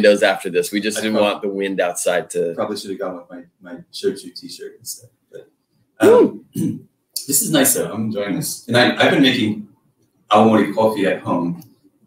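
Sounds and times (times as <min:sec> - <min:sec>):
man clearing his throat: 0:06.0 - 0:06.8.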